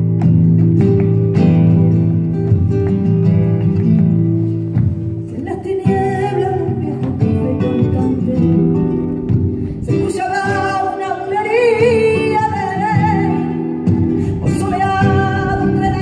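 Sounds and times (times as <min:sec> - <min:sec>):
flamenco guitars playing: 0:00.0 - 0:16.0
woman singing: 0:05.3 - 0:16.0.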